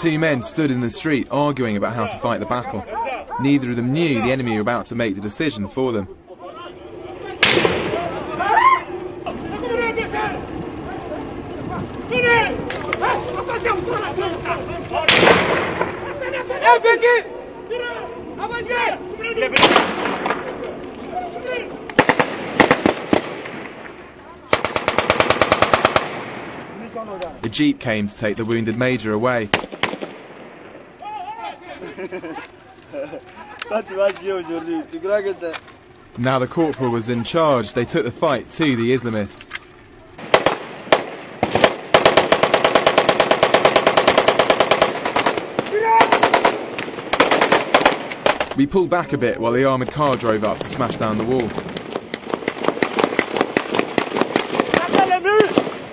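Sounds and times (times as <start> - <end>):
single gunshots: 7.4 - 8.2, 15.0 - 16.0, 19.5 - 20.5, 22.0 - 26.8, 29.5 - 30.7, 40.2 - 48.6, 51.4 - 55.9
automatic gunfire burst: 7.4 - 8.3, 15.0 - 16.0, 19.6 - 20.4, 22.0 - 26.6, 29.5 - 30.4, 40.2 - 48.6, 50.5 - 55.9.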